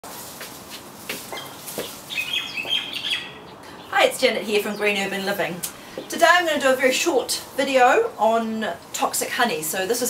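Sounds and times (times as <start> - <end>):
leafy branch rustling: 0.0 - 10.0
small bird chirping: 1.3 - 5.4.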